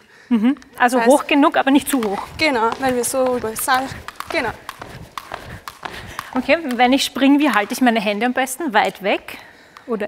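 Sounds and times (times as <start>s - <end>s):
skipping ropes slapping floor: 1.5s - 9.9s
shoes landing on floor: 1.8s - 7.9s.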